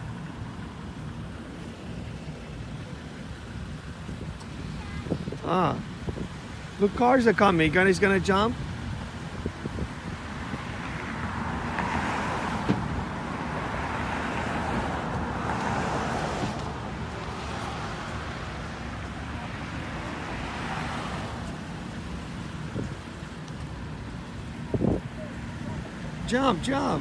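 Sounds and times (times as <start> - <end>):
road traffic noise: 0.0 - 27.0
wind on microphone: 24.6 - 25.2.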